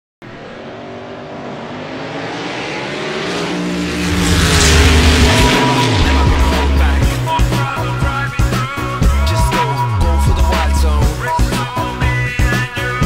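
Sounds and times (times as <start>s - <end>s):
race car engine: 0.2s - 13.0s
heavy low rumble: 0.4s - 11.0s.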